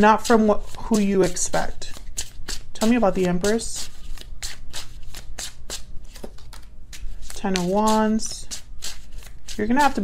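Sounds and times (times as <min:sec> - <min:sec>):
cards being shuffled: 0:00.3 - 0:10.0.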